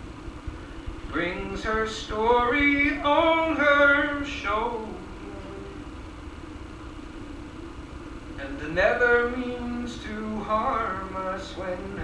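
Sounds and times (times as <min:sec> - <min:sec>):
faint steady low tone: 0:00.0 - 0:12.0
live room rumble and hiss: 0:00.0 - 0:12.0.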